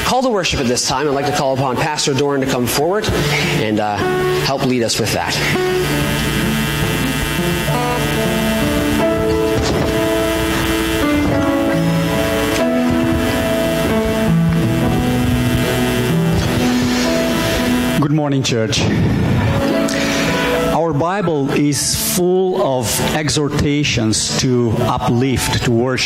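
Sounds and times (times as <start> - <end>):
worship band playing soft music: 0.0 - 26.0.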